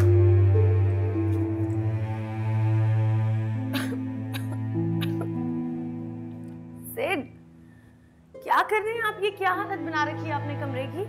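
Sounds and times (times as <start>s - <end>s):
slow low dramatic chords: 0.0s - 6.8s.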